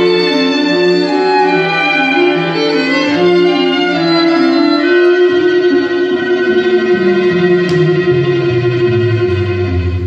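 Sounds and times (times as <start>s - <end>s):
string quartet music: 0.0s - 10.0s.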